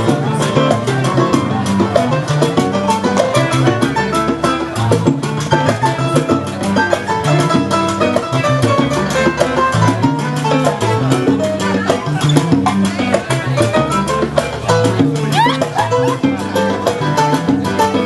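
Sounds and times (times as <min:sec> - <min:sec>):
salsa music: 0:00.0 - 0:18.0.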